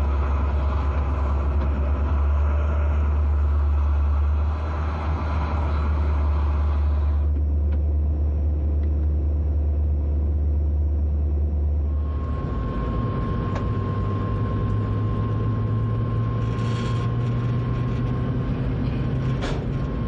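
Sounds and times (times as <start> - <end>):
train locomotive hum and rumble: 0.0 - 20.0.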